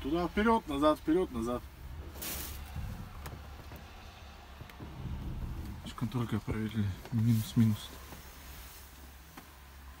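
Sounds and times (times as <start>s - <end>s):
steady low hum: 0.0s - 10.0s
rustle of wiring: 0.8s - 10.0s.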